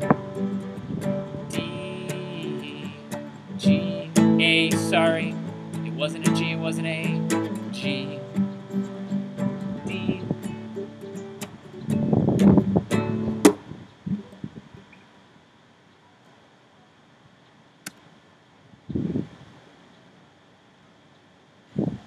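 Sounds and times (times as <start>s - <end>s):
classical guitar strumming chords: 0.0s - 14.9s.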